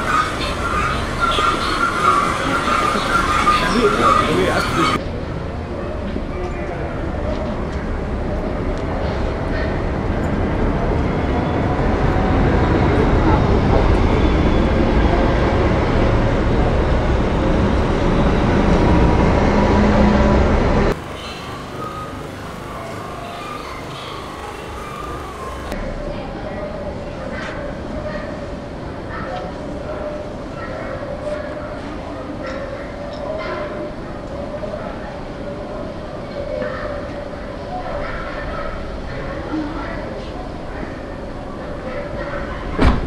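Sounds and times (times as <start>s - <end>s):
indistinct voices: 0.0s - 5.0s, 11.1s - 43.0s.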